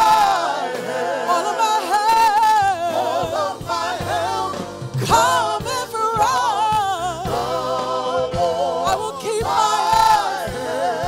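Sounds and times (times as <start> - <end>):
lead voice singing with vibrato: 0.0 - 11.0
women singing gospel song: 0.0 - 11.0.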